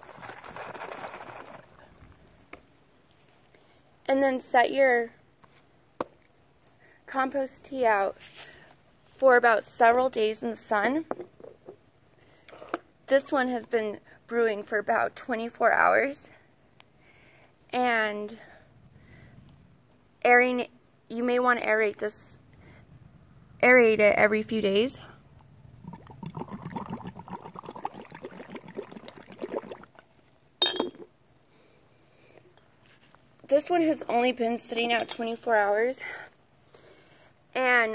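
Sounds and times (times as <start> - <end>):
bubbling through a straw in liquid: 0.0 - 2.2, 25.4 - 30.2
short breath: 17.0 - 17.5, 18.4 - 19.4, 36.0 - 37.4
glass jar clicks and taps: 30.6 - 31.1.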